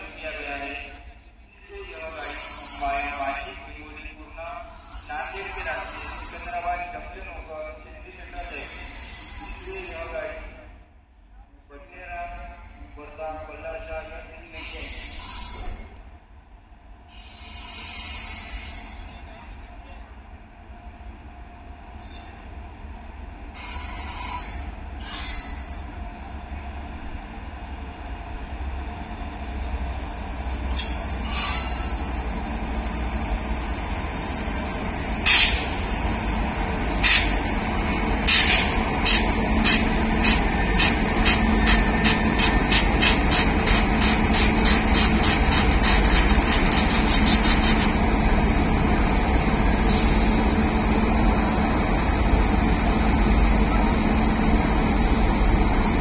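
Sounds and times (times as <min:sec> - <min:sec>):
electric locomotive rumbling: 0:17.1 - 0:56.0.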